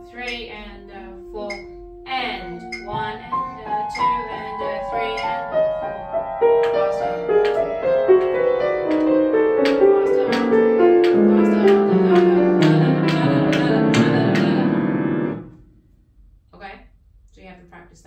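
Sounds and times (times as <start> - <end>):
grand piano playing: 0.0 - 15.7.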